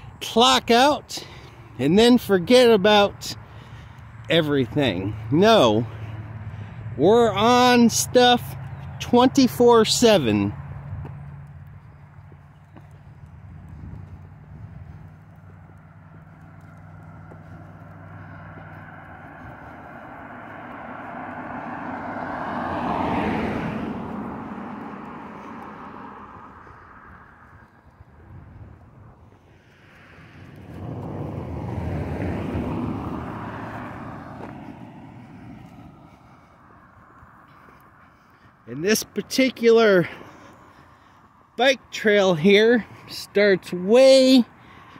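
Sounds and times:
cars passing: 0:00.0 - 0:44.9.

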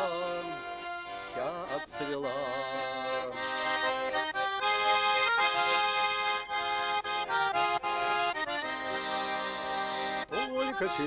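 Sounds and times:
accordion playing melody: 0:00.0 - 0:11.0.

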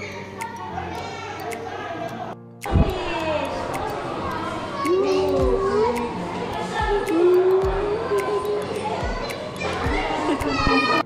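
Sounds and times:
background music: 0:00.0 - 0:11.0
indistinct voices: 0:00.0 - 0:11.0.

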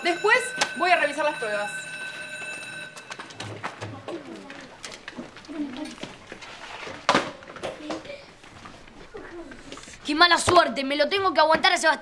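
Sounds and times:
children chattering: 0:03.4 - 0:12.0.

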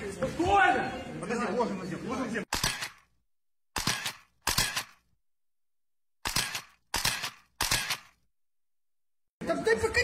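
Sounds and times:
camera shutter click: 0:02.5 - 0:03.1, 0:03.8 - 0:05.0, 0:06.2 - 0:08.2.

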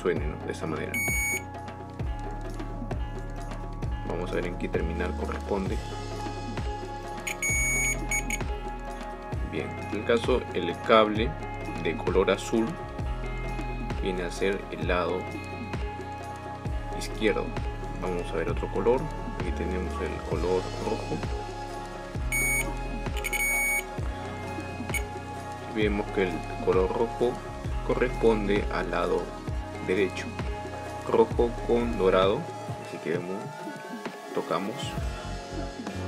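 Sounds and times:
background music with steady beat: 0:00.0 - 0:36.0
multimeter continuity beeps: 0:01.0 - 0:01.5, 0:07.3 - 0:08.5, 0:22.3 - 0:23.9, 0:24.9 - 0:25.1.

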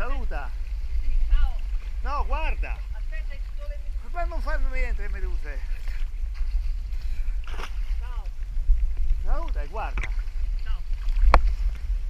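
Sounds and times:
sea water rumble: 0:00.0 - 0:12.0.

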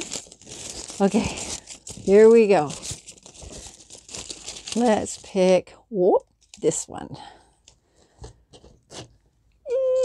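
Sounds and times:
paper rustling and crinkling: 0:00.0 - 0:05.6.

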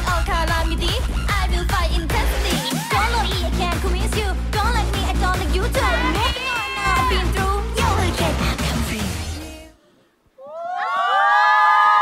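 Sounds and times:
women cheering: 0:05.8 - 0:07.5, 0:10.4 - 0:12.0.

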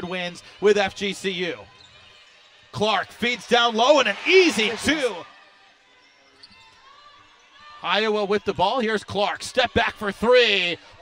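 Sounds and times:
arena background noise: 0:03.1 - 0:05.4.

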